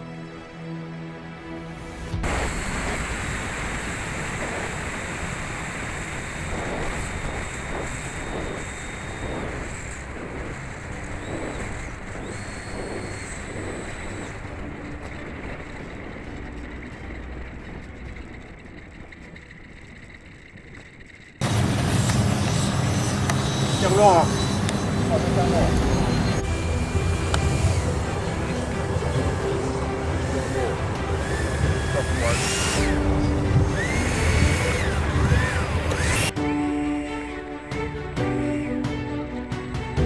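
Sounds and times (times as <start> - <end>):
deep turbine noise: 1.3 - 40.0
jet turbine whine: 1.7 - 40.0
wind rush: 2.0 - 36.4.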